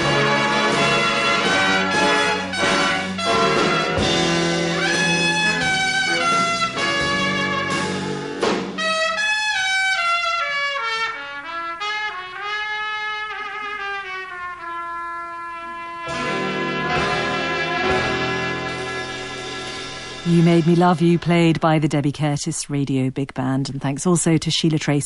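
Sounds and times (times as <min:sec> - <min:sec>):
swing big band ballad: 0:00.0 - 0:20.8.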